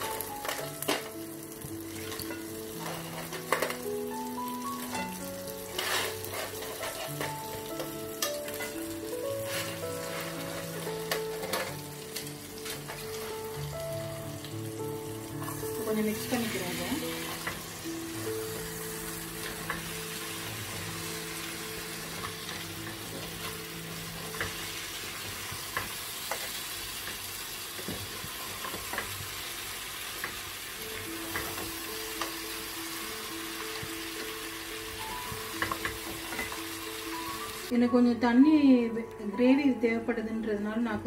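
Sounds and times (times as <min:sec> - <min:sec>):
food sizzling in frying pan: 0:00.0 - 0:37.7.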